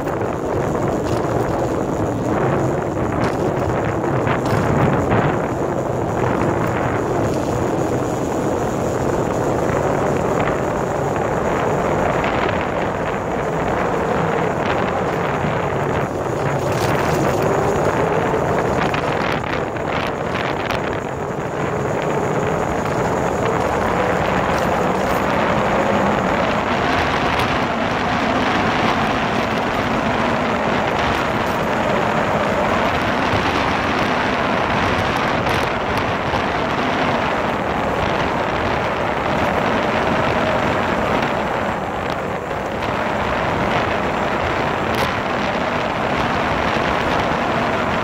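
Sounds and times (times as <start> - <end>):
motorcycle engine at speed: 0.0 - 48.0
wind rushing over microphone: 0.0 - 48.0.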